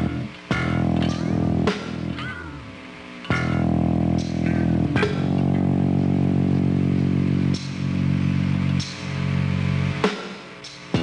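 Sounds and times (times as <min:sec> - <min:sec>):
rock guitar and bass chords: 0:00.0 - 0:11.0.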